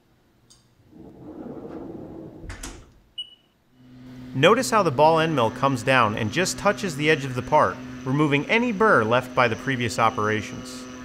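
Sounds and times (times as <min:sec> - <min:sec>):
sliding machine door rolling shut: 0:00.8 - 0:03.1.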